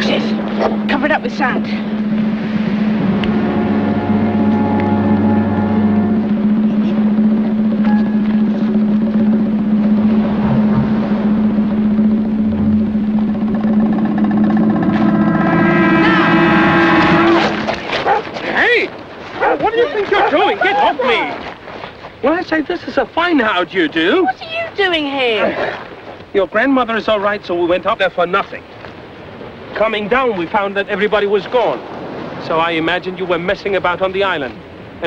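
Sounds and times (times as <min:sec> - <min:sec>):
motorboat engine running: 0:00.0 - 0:18.3.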